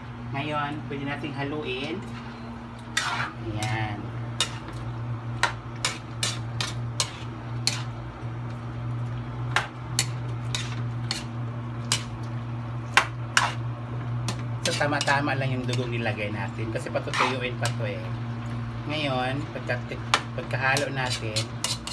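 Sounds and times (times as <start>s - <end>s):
steady low hum: 0.0s - 21.9s
metal ladle scraping a wok: 2.9s - 3.8s, 4.4s - 4.7s, 5.8s - 8.0s, 9.6s - 11.3s, 13.3s - 13.6s, 17.0s - 17.6s, 20.8s - 21.9s.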